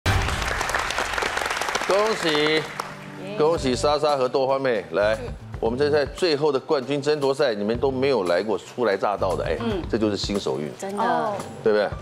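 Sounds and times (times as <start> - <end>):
audience applauding: 0.1 - 3.6.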